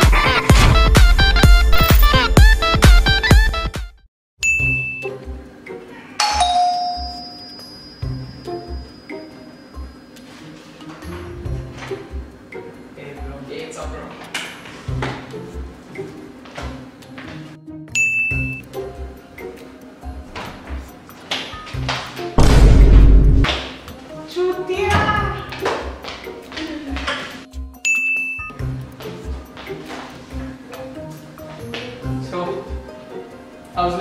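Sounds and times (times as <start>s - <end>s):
background music with steady beat: 0.0s - 34.0s
electronic doorbell chime: 4.4s - 5.2s, 6.2s - 9.2s, 17.9s - 18.7s, 27.8s - 28.6s
high clear ding: 4.4s - 5.2s, 6.2s - 9.0s, 18.0s - 18.6s, 27.8s - 28.6s.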